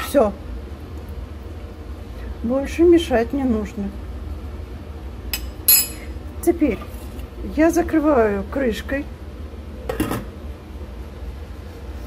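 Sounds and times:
low steady hum: 0.0 - 12.0
metal clinks on steel pot: 5.4 - 6.0.

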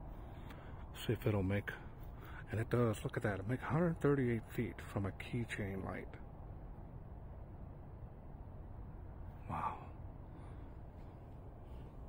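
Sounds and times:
faint low rumble: 0.0 - 12.0.

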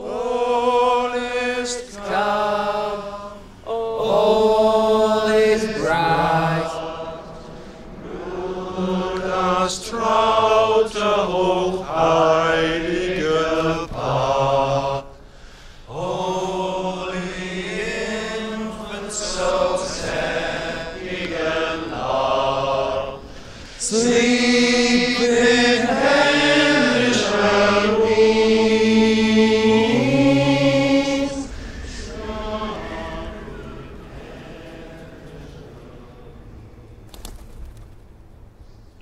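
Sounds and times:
men singing a carol together: 0.0 - 36.7.

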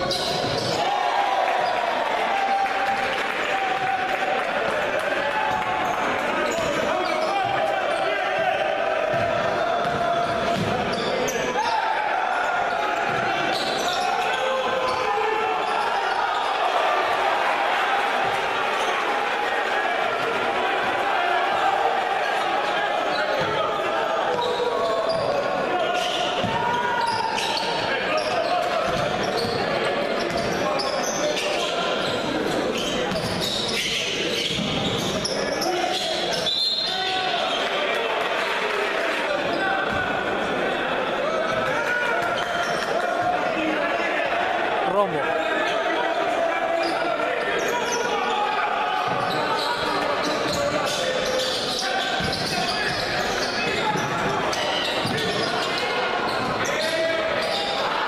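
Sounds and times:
spectators' voices hum: 0.0 - 58.0
basketball bouncing on wooden court: 9.1 - 11.1, 13.0 - 13.3.

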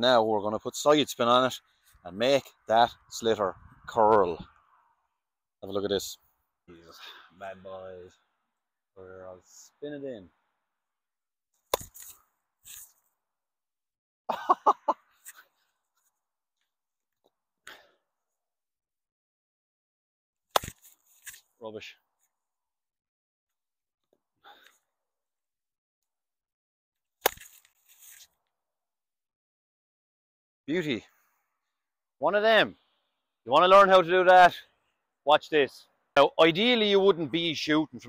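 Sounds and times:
hurley striking ball: 11.7 - 12.1
stick striking ball: 11.7 - 12.8, 20.5 - 21.4, 27.2 - 27.6.

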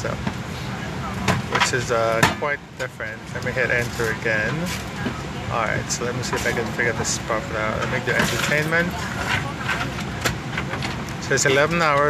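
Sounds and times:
passengers talking: 0.0 - 12.0
ventilation hum: 0.0 - 12.0.

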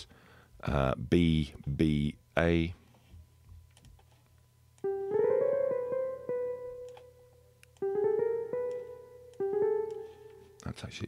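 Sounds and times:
jazz guitar notes: 4.9 - 7.2.

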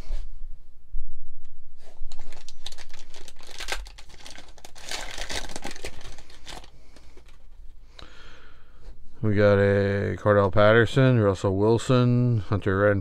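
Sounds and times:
wrapper crinkling and tearing: 2.1 - 7.5.

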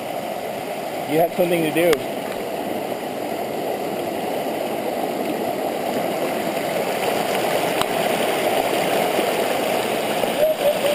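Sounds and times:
river water rushing over rocks: 0.0 - 10.9.

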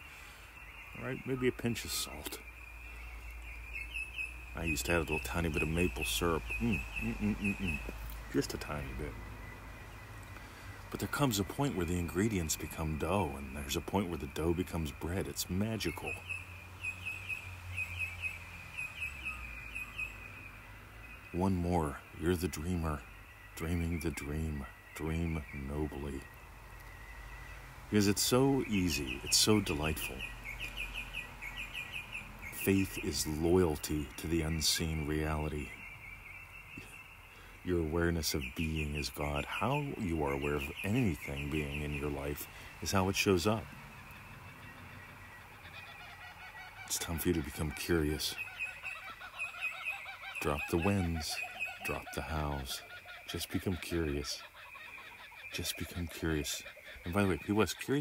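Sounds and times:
bird chirping: 0.0 - 58.0.

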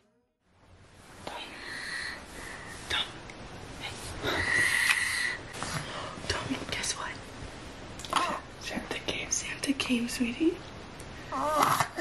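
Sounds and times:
woman whispering: 1.2 - 2.2, 2.8 - 3.2, 6.2 - 7.2, 8.3 - 10.5.

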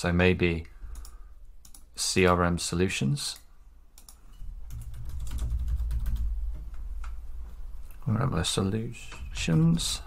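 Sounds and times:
computer keyboard typing: 4.0 - 7.2.

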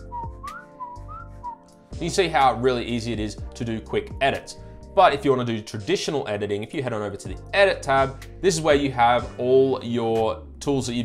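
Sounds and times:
person whistling sliding notes: 0.0 - 1.7
quiet background music: 0.0 - 11.0.

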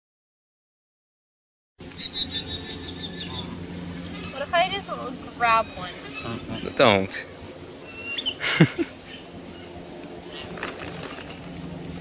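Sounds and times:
low steady hum: 1.8 - 12.0
high pulsing chirping: 1.9 - 10.4.

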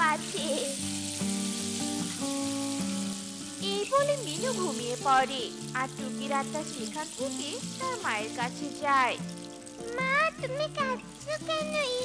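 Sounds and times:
soft background music: 0.0 - 12.0
steady hiss: 0.0 - 12.0
cartoon character high voice: 9.8 - 12.0.

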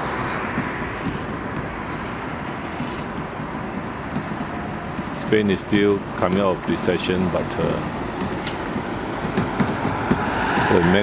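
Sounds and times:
road traffic rumble and hiss: 0.0 - 11.0.

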